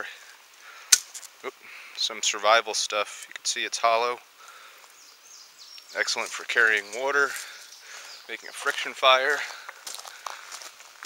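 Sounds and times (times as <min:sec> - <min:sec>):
plant stalk snapping: 0:00.9 - 0:01.3.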